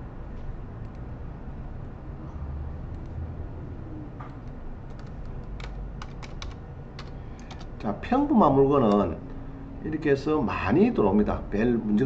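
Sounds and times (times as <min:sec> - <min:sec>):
low room hum: 0:00.0 - 0:12.0
computer keyboard clicks: 0:04.3 - 0:07.7, 0:08.8 - 0:09.1.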